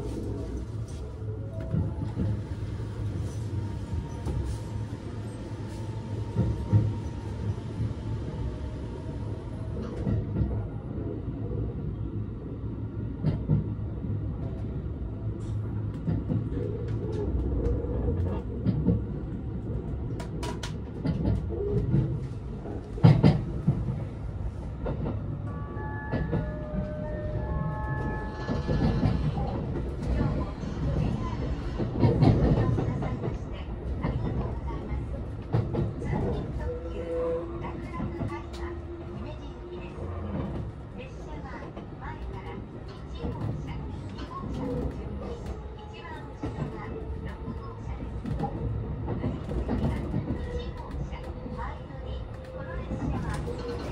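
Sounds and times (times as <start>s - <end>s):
train wheels rumbling on track: 0.0s - 53.9s.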